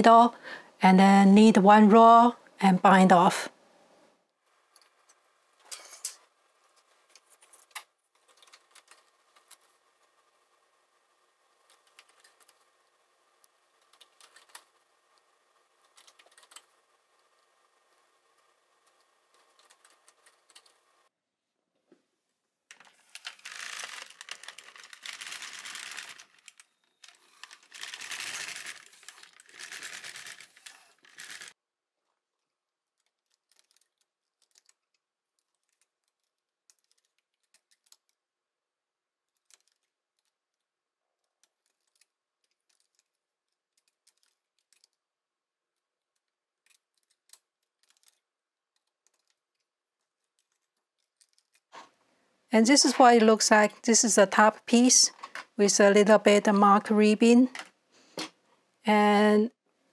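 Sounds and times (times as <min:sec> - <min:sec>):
knitting machine needles clicking: 0:04.7 - 0:10.2, 0:11.5 - 0:20.8, 0:22.7 - 0:31.6, 0:33.0 - 0:38.2, 0:39.3 - 0:45.0, 0:46.1 - 0:51.7.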